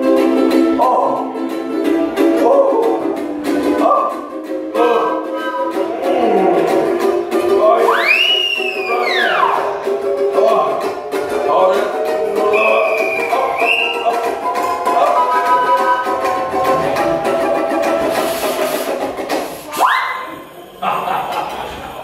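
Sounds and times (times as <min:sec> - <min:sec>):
strummed ukulele: 0:00.0 - 0:22.0
slide whistle swooping: 0:07.8 - 0:09.6, 0:12.4 - 0:16.5, 0:19.8 - 0:20.3.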